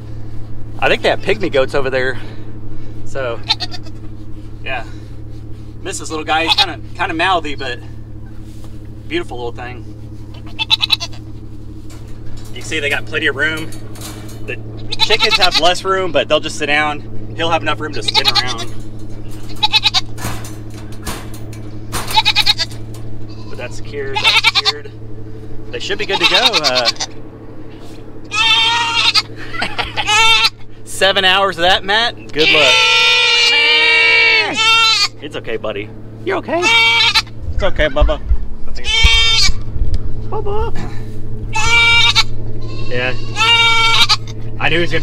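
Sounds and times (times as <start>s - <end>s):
steady low hum: 0.0s - 45.0s
goat bleating: 3.4s - 4.1s, 6.0s - 6.9s, 10.3s - 11.4s, 12.8s - 20.2s, 21.5s - 25.0s, 25.7s - 27.2s, 28.2s - 30.7s, 32.3s - 35.2s, 36.4s - 37.7s, 38.8s - 39.7s, 41.4s - 44.5s.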